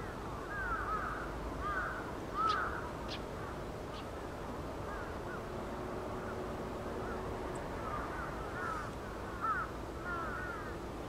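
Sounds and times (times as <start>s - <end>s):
birds chirping: 0.0s - 5.5s, 6.1s - 10.8s
outdoor background noise: 0.0s - 11.0s.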